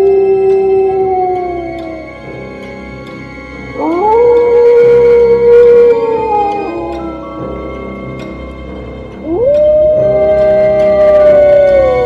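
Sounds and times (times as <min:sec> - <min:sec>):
wolf howl: 0:00.0 - 0:02.4, 0:03.7 - 0:07.6, 0:09.2 - 0:12.0
eerie background music: 0:00.0 - 0:12.0.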